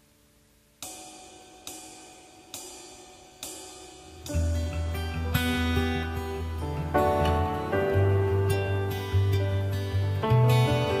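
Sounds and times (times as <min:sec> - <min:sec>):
ringing struck hits: 0:00.8 - 0:11.0.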